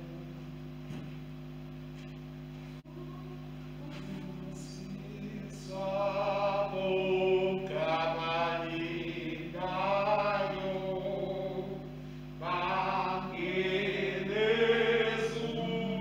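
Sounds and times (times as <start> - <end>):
steady low hum: 0.0 - 16.0
liturgical chant singing: 3.8 - 16.0.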